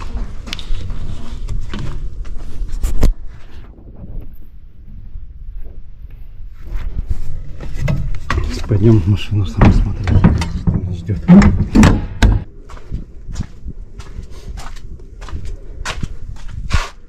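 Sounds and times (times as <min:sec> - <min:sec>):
wind rumble on microphone: 0:11.6 - 0:17.0.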